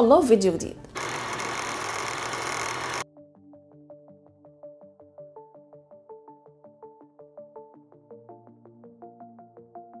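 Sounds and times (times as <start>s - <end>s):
film projector rattle: 1.0s - 3.0s.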